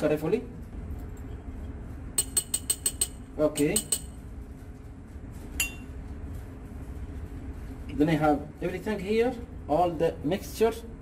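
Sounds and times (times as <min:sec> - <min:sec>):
glass clinking against glass: 0:02.2 - 0:04.2, 0:05.6 - 0:05.9.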